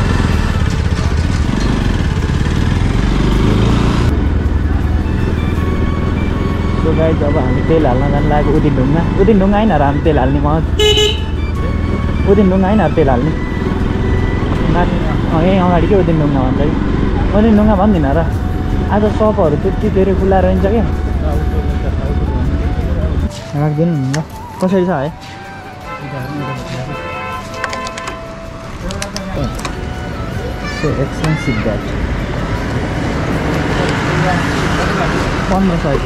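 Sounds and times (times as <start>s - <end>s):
motorcycle engine running: 0.0s - 23.2s
street and vehicle rumble: 0.0s - 36.0s
music: 3.4s - 36.0s
people talking: 6.8s - 10.6s, 14.6s - 18.3s, 18.9s - 25.1s, 25.9s - 27.0s, 28.8s - 29.7s, 30.4s - 32.0s, 33.7s - 36.0s.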